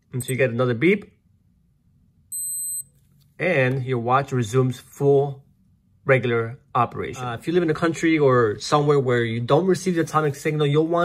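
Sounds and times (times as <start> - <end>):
wristwatch electronic beep: 2.3 - 2.9.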